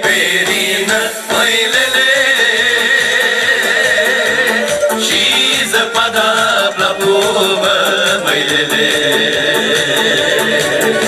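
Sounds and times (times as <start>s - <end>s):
folk music through sound system: 0.0s - 11.0s.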